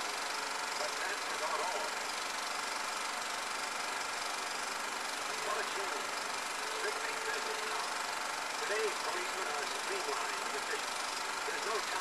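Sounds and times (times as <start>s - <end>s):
film projector whirring: 0.0s - 12.0s
faint muffled voices: 0.7s - 2.1s, 5.2s - 12.0s.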